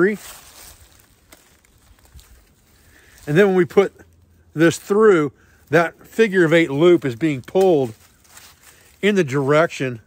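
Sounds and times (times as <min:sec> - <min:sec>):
rope rustling through a knot: 0:00.0 - 0:04.9, 0:05.6 - 0:09.8.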